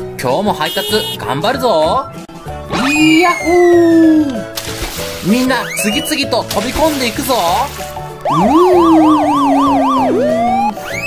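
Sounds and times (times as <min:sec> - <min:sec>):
police siren wailing: 0:08.2 - 0:11.0.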